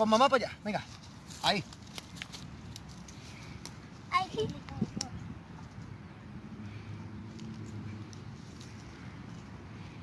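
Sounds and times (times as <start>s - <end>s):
dry twigs snapping: 1.2s - 3.8s.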